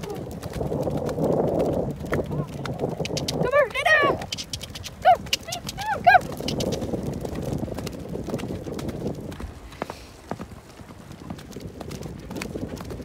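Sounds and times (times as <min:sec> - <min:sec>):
horse hoofbeats on sand: 0:00.0 - 0:13.0.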